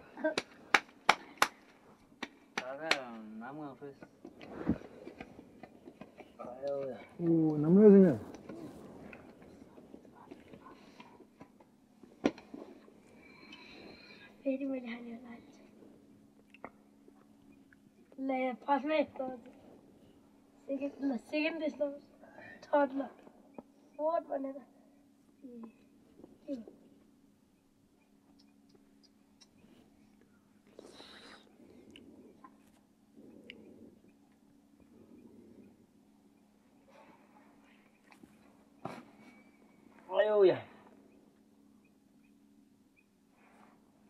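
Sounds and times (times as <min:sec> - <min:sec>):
faint whisper: 0:08.4 - 0:11.3, 0:30.7 - 0:34.1.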